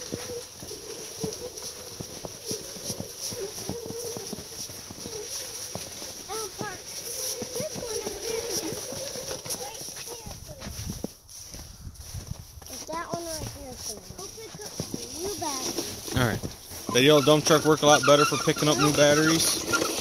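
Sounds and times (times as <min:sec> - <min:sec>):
child making playful sounds: 0:06.3 - 0:10.9, 0:12.7 - 0:16.0.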